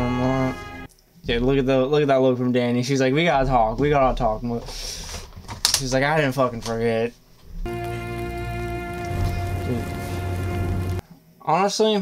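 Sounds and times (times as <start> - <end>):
sustained score chord: 0.0 - 0.9, 7.7 - 11.0
fire crackling and hissing: 7.7 - 11.0.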